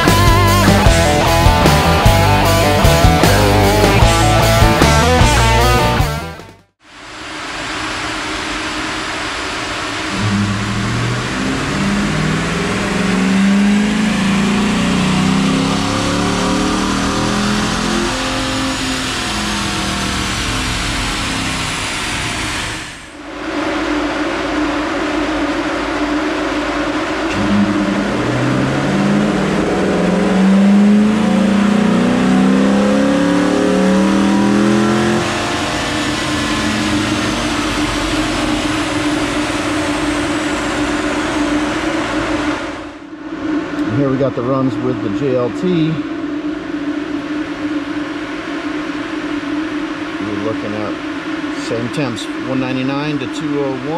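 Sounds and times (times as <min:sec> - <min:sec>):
car engine revving on dyno: 0:00.0 - 0:53.9.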